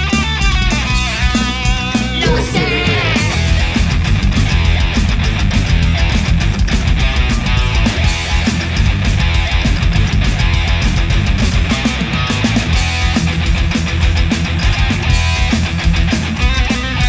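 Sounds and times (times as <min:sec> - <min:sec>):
drum kit beat: 0:00.0 - 0:17.0
electric bass: 0:00.0 - 0:17.0
electric guitar: 0:00.0 - 0:17.0.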